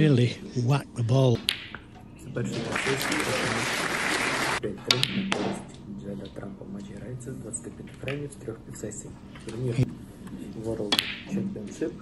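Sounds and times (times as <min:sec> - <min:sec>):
audience applauding: 0:02.5 - 0:04.6.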